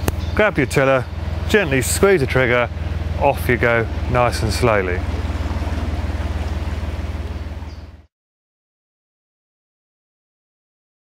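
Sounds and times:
diesel engine low throb: 0:00.0 - 0:08.1
propeller churning water: 0:00.0 - 0:08.1.

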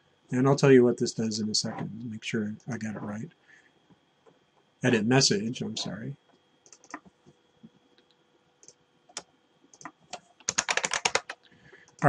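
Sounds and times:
computer keyboard typing: 0:06.6 - 0:07.1, 0:08.6 - 0:11.4.

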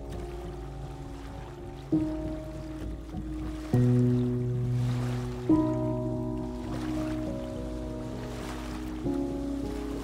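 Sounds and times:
piano chords ringing: 0:00.0 - 0:10.0
sea waves: 0:00.0 - 0:10.0.

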